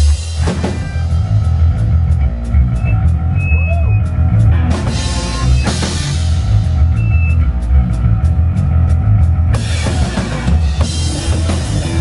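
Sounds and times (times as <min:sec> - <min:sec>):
bass guitar: 0:00.0 - 0:12.0
drums: 0:00.0 - 0:12.0.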